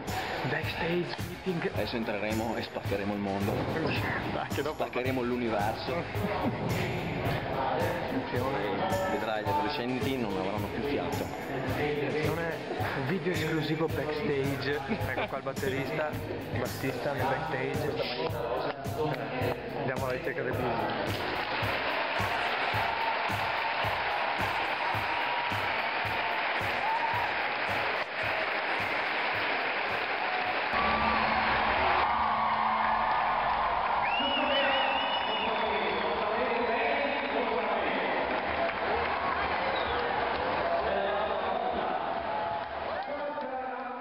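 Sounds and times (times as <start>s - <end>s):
music with steady beat: 0.0s - 32.1s
crowd clapping and cheering: 4.6s - 14.6s, 20.6s - 44.0s
trilling whistle: 34.0s - 36.2s.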